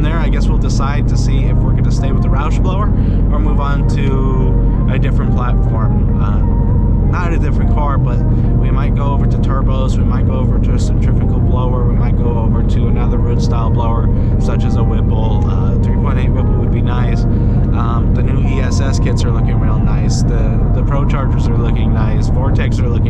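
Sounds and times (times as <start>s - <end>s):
car engine drone: 0.0s - 23.0s
man talking: 0.0s - 23.0s
road noise: 0.0s - 23.0s.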